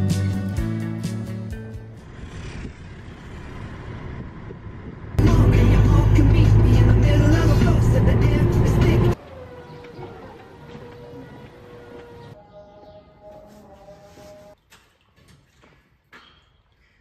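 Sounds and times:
car engine and road noise: 1.3 - 12.4
guitar music: 5.2 - 9.2
song on car radio: 5.2 - 9.2.

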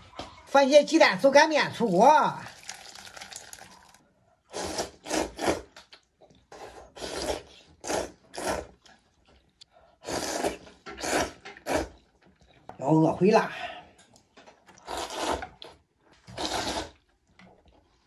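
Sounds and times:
man slurping noodles: 4.5 - 5.7, 6.6 - 8.7, 10.0 - 11.9, 14.8 - 15.6, 16.3 - 17.0.

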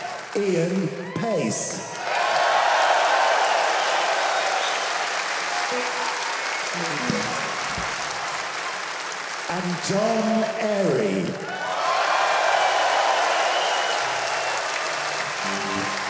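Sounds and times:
large audience applauding: 0.0 - 16.0
person speaking: 6.7 - 7.9.

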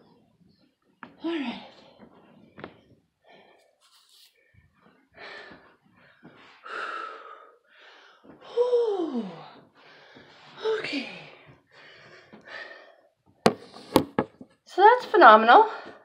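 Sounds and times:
woman breathing hard: 5.1 - 10.6, 11.7 - 14.0.

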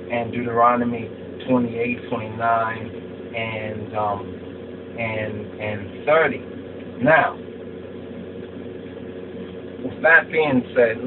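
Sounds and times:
steady low hum with hiss: 0.0 - 11.0.

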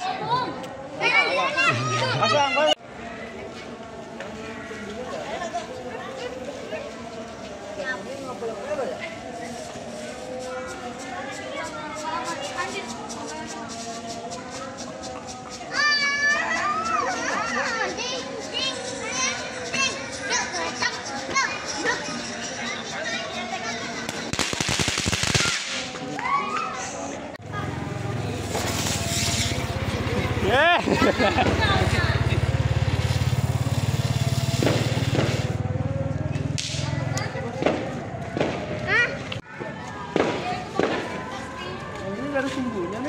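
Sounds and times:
children's voices: 0.0 - 33.2, 36.7 - 42.2
firework spraying sparks: 24.1 - 26.1, 28.3 - 29.8, 32.8 - 35.6, 36.6 - 37.0
loud hissing burst: 28.4 - 29.7, 32.9 - 35.6.

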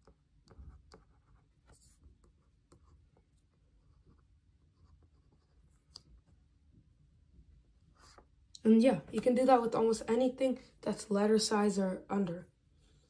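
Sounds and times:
stylus scratching on plastic tablet: 0.0 - 6.0.

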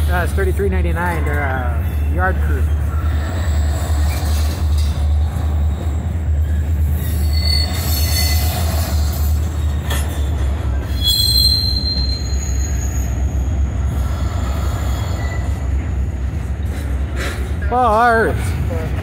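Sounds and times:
train wheels rumbling on rail: 0.0 - 19.0
high-pitched wheel squeals: 2.7 - 13.6, 14.7 - 15.8.

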